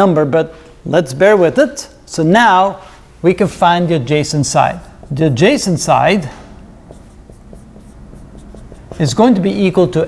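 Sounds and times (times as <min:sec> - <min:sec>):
marker writing on whiteboard: 0:04.5 - 0:09.8.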